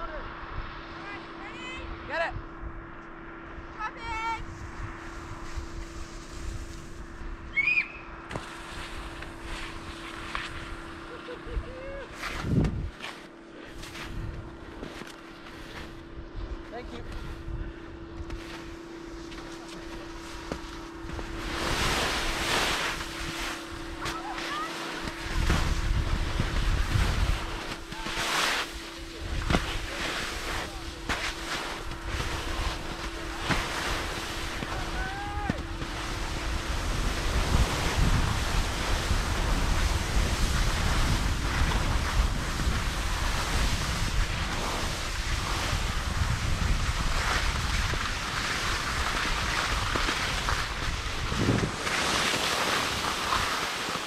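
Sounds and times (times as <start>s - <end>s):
wind rushing across microphone: 0.0s - 7.6s, 8.4s - 13.0s, 24.9s - 53.8s
faint steady hum: 0.0s - 54.0s
skis scraping over snow: 4.5s - 7.2s, 8.3s - 10.9s, 12.1s - 16.0s, 18.2s - 54.0s.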